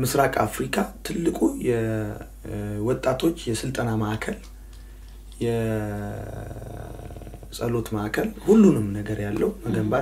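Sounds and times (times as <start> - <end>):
man speaking: 0.0 - 4.5, 5.4 - 10.0.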